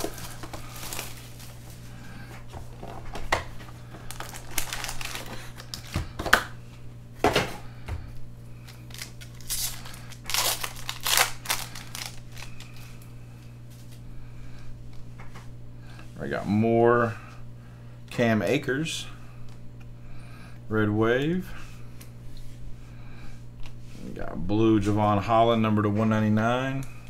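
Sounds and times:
plastic wrappers crinkling and tearing: 0.0 - 1.8, 2.8 - 6.5, 8.7 - 13.0.

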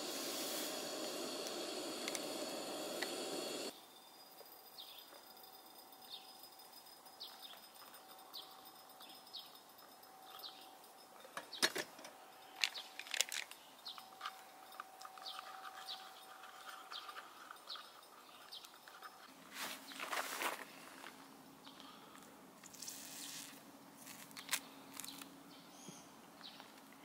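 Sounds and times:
small bird chirping: 13.6 - 19.3.

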